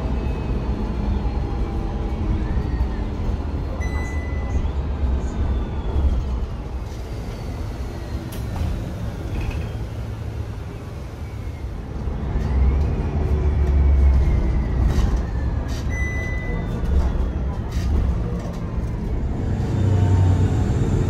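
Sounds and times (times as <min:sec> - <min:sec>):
bus engine and road rumble: 0:00.0 - 0:21.0.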